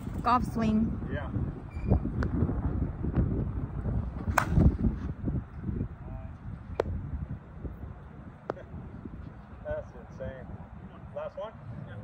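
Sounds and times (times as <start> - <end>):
wind rumbling on microphone: 0.0 - 12.0
bat striking softball: 4.2 - 4.9.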